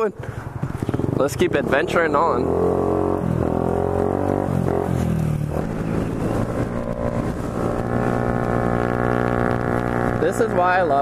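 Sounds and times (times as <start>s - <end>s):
scooter engine running: 0.2s - 11.0s.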